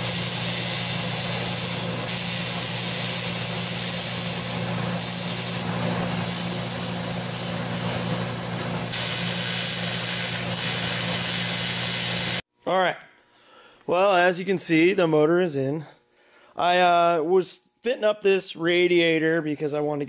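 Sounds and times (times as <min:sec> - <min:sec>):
electric arc welding hiss and hum: 0:00.0 - 0:12.4.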